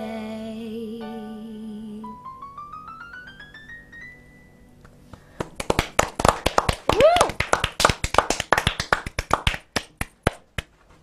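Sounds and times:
people clapping: 5.1 - 10.7
person whooping: 6.9 - 7.5.

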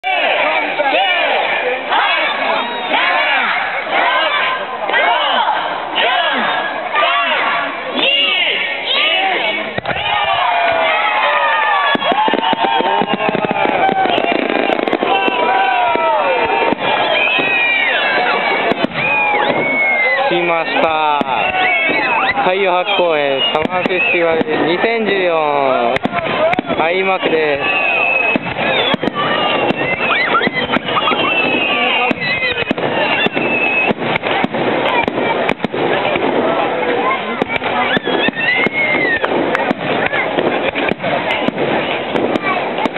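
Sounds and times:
crowd shouting and cheering: 0.0 - 42.9
fireworks crackling pops: 9.7 - 42.9.

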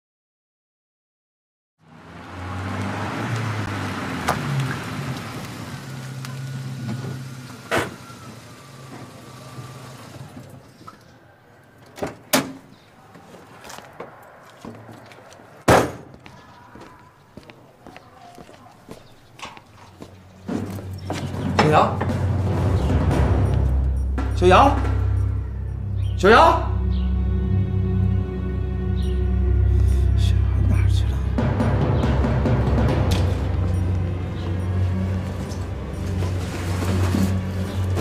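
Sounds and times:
van engine running: 2.1 - 10.8, 20.0 - 38.0
vehicle doors shutting: 4.2 - 11.1.

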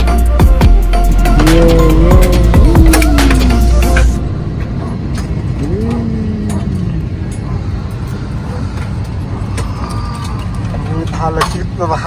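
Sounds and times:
airliner cabin rumble: 1.2 - 12.0
gliding voice-like sound: 1.3 - 7.8.

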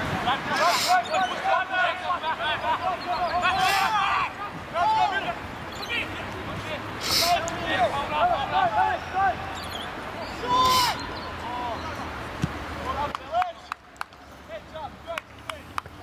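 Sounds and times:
men shouting: 0.2 - 9.6
loud hissing bursts: 7.0 - 7.4.

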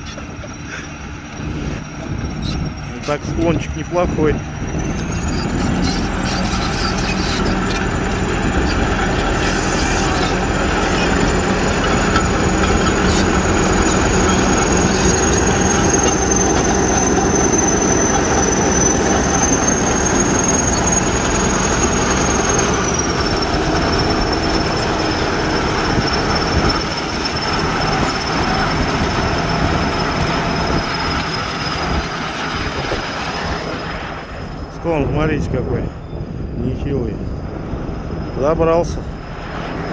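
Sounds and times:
crawler tracks clattering: 0.0 - 36.0
diesel engine running: 0.0 - 39.9
high-pitched squeal: 0.0 - 39.9.

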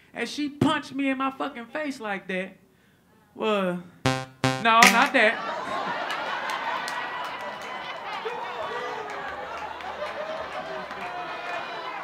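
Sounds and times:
scattered hand claps: 4.8 - 5.2
audience laughing: 5.3 - 7.7.

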